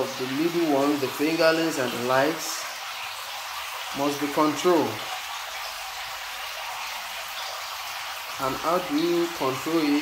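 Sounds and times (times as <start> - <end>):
water hissing: 0.0 - 10.0.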